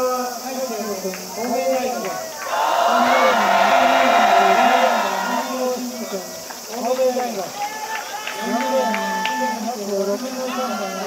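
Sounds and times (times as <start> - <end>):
crowd shouting and cheering: 1.4 - 11.0.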